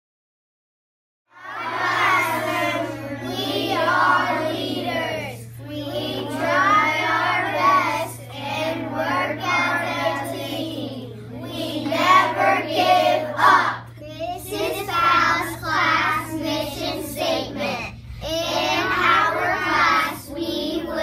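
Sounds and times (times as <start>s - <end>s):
children chanting in unison: 1.3s - 21.0s
steady low hum: 1.3s - 21.0s.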